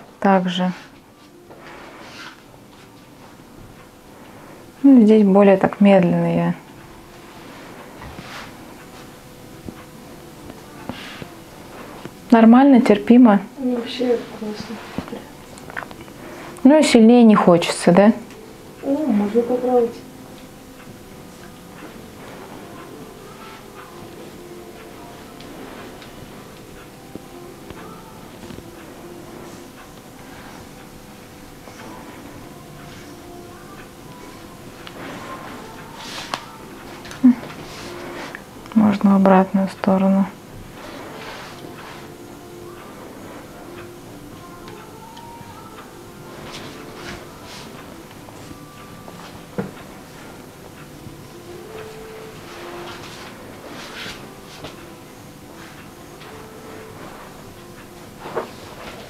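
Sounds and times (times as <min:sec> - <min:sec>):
scraper swishing on skin: 0:00.7 - 0:03.4, 0:07.2 - 0:09.1, 0:14.1 - 0:15.3, 0:34.8 - 0:38.5, 0:40.6 - 0:42.2, 0:46.3 - 0:47.9, 0:52.4 - 0:54.8.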